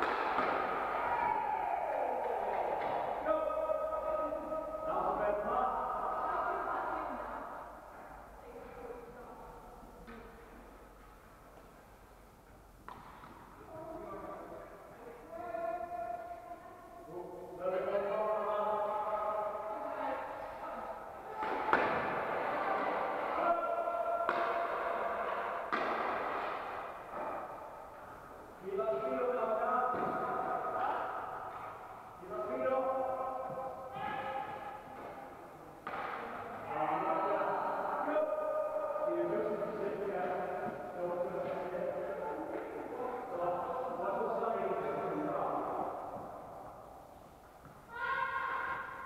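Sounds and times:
voices echoing in a hall: 0.0 - 49.0.

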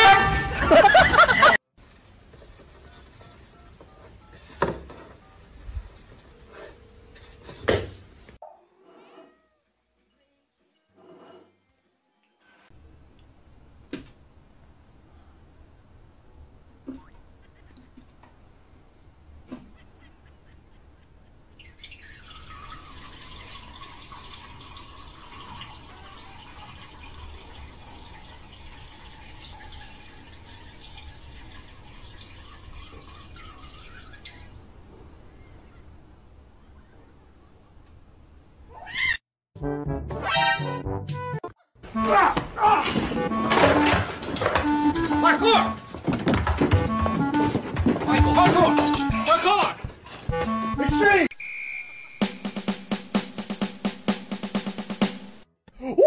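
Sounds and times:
cat meowing: 9.0 - 9.6, 38.7 - 39.2.

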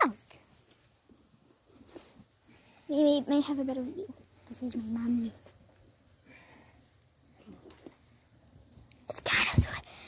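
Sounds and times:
faint rustling of wire fence: 0.0 - 10.0.

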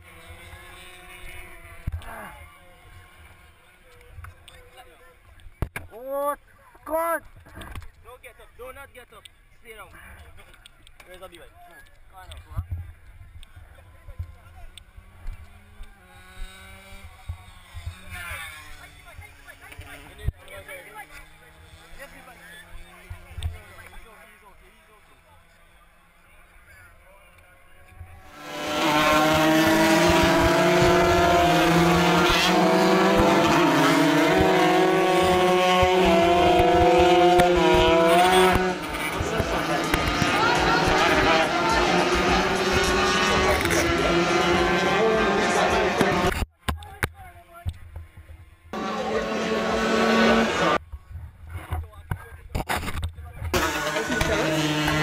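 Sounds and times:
people's voices: 0.6 - 55.0.

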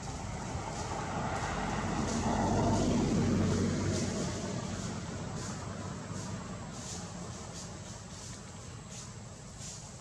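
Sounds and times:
vehicle passing: 0.0 - 9.4.

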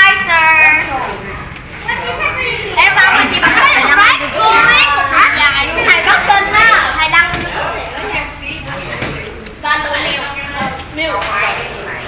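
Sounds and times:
children talking and chattering: 0.0 - 12.0.

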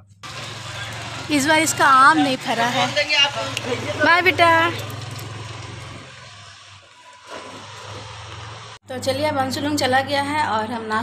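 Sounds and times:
motor scooter riding away: 0.2 - 8.8.

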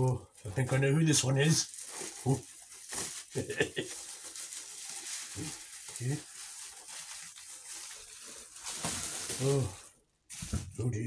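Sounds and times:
bubble wrap crinkling: 0.0 - 10.8.

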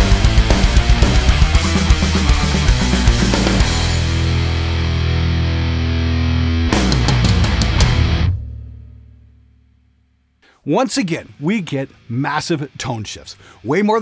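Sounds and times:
heavy metal band playing: 0.0 - 8.9
high-gain electric guitar: 0.0 - 9.1.

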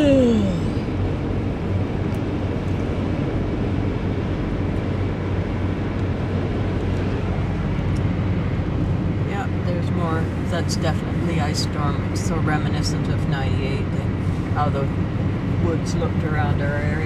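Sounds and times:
low engine hum: 0.0 - 17.0
road and tyre noise: 0.0 - 17.0.

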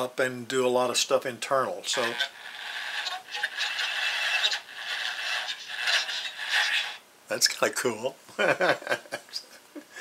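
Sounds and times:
crackling electronic noise from speaker: 1.9 - 7.0.

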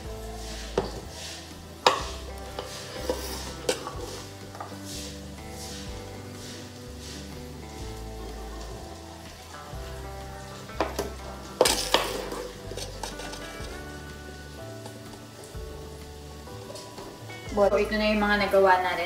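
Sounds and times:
background music: 0.0 - 19.0
metal spoon scraping pot: 0.7 - 4.8, 11.6 - 13.8.

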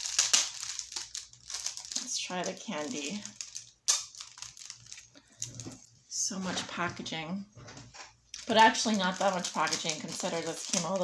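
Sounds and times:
candy clicking: 0.0 - 5.6, 8.3 - 11.0
plastic bag crinkling: 0.0 - 5.9, 8.3 - 11.0.

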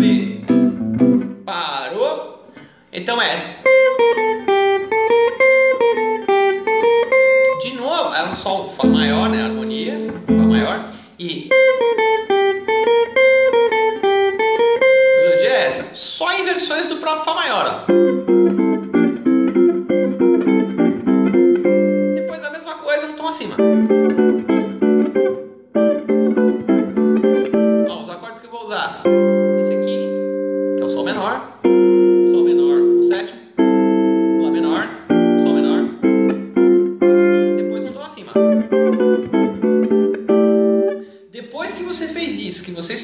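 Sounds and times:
jazz guitar chords ringing: 0.0 - 1.5, 3.5 - 16.6, 17.7 - 22.6, 23.2 - 28.2, 28.8 - 43.0.

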